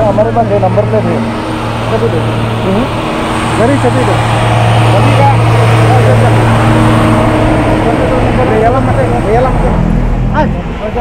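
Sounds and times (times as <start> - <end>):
people talking: 0.0 - 1.2, 1.9 - 2.9, 3.6 - 4.2, 4.9 - 6.6, 7.8 - 11.0.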